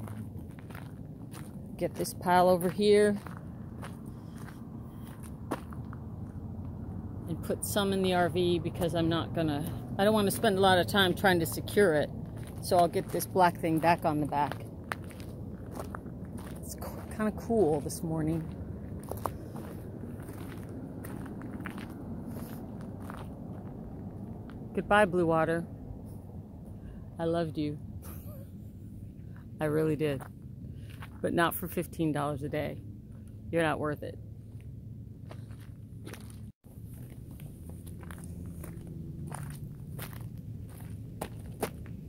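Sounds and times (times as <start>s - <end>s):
footsteps crunching on gravel: 0.0s - 6.4s, 10.3s - 23.8s, 35.3s - 42.0s
steady low rumble: 0.0s - 42.0s.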